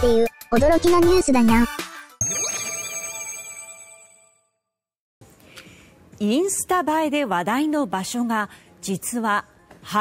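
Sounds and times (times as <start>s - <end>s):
bright bell chime: 2.2s - 4.4s.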